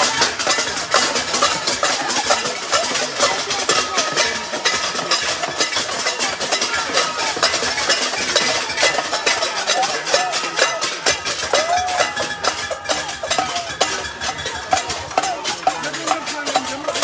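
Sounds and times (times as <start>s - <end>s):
metal pots being banged: 0.0s - 17.0s.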